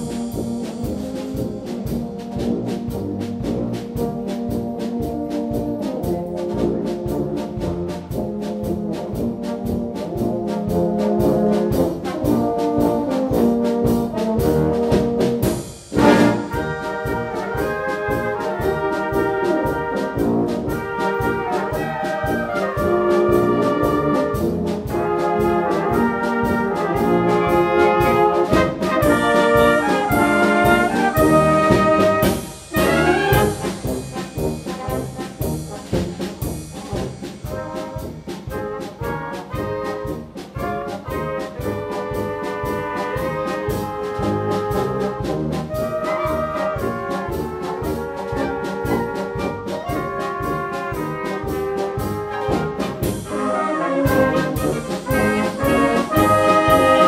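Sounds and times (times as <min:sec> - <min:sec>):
brass music over a steady beat: 0:00.0 - 0:57.0.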